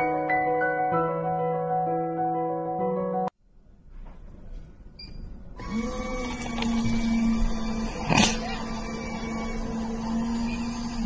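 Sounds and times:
vending machine motor hum: 5.5s - 11.0s.

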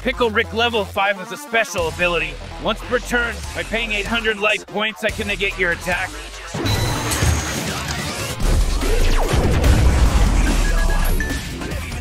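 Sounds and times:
background music: 0.0s - 12.0s
crash and booms: 8.4s - 11.0s.

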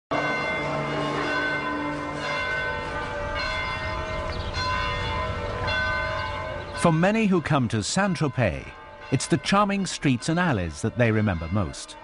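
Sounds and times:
church bells ringing: 0.1s - 12.0s.

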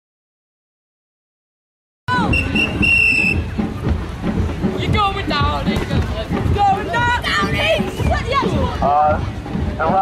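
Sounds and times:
referee's whistle: 2.1s - 3.5s.

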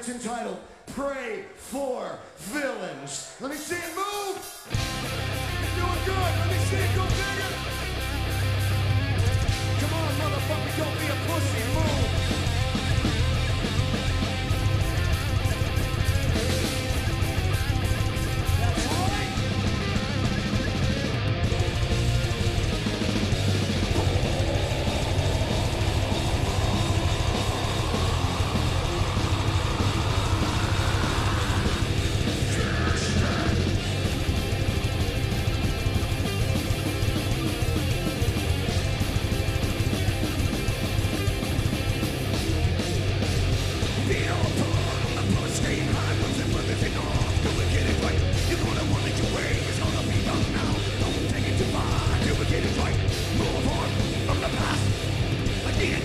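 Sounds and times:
distorted electric guitars: 2.4s - 56.0s
pounding drum kit: 3.6s - 56.0s.

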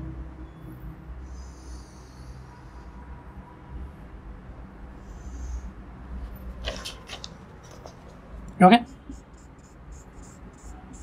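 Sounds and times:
marker scratching on whiteboard: 6.6s - 11.0s.

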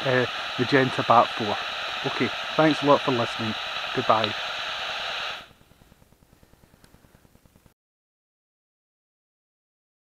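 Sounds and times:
bat detector hiss: 0.0s - 7.3s
faint low crackle: 5.0s - 7.8s.

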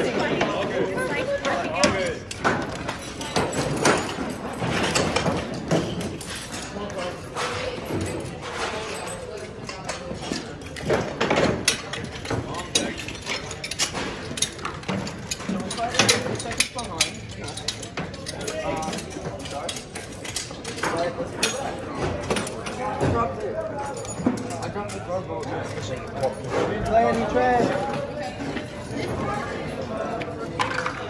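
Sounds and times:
crowd voices: 0.0s - 31.0s
metal tools clanking: 0.1s - 29.4s.

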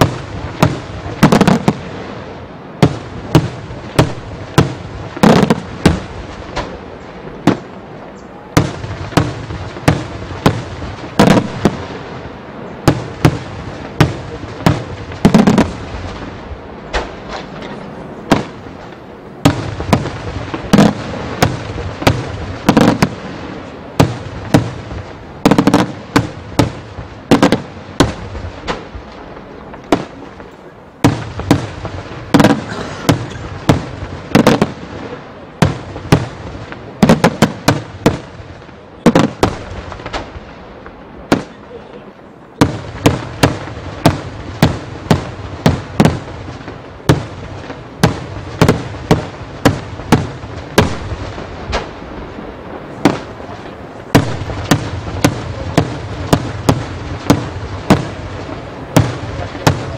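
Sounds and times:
fireworks bangs: 0.0s - 59.9s.

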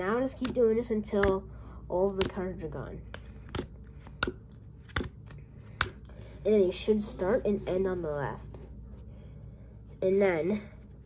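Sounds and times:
playing cards snapping on table: 3.1s - 6.0s.

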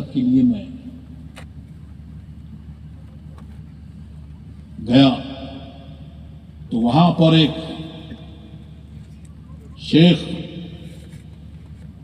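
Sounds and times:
low background rumble: 0.0s - 12.0s
man speaking: 4.8s - 5.5s, 6.7s - 8.4s, 9.8s - 10.9s.

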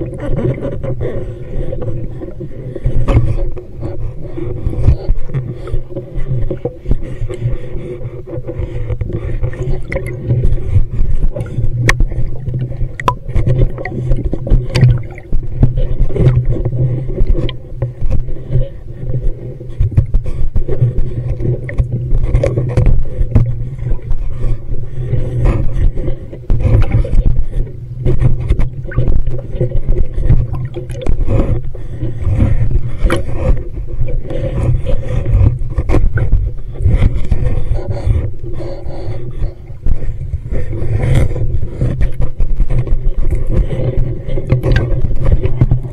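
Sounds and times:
underwater low rumble: 0.0s - 45.9s.

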